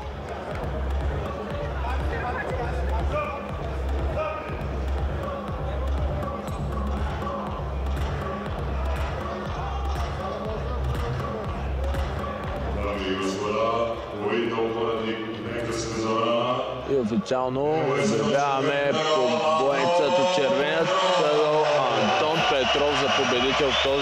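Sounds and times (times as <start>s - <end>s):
arena music with heavy bass beat: 0.0s - 14.2s
murmur of crowd voices: 0.0s - 24.0s.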